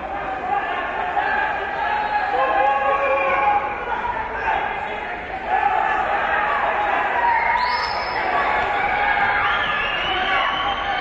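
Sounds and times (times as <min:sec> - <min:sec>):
people shouting: 0:00.1 - 0:11.0.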